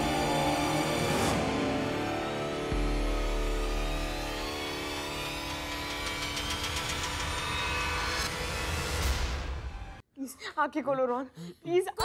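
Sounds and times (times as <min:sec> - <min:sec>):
low rumbling drone: 0:00.0 - 0:08.8.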